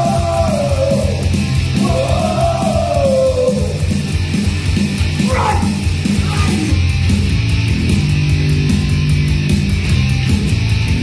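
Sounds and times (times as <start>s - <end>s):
heavy rock music: 0.0s - 11.0s.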